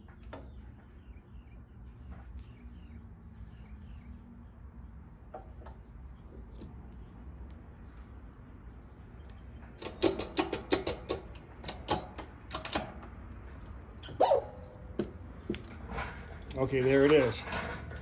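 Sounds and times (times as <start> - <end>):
hand press squeaking and clicking: 9.2 - 12.9.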